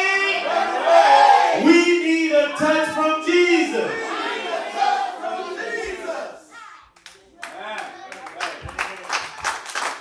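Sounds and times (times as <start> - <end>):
congregation voices: 0.0 - 9.4
hand claps: 7.0 - 10.0.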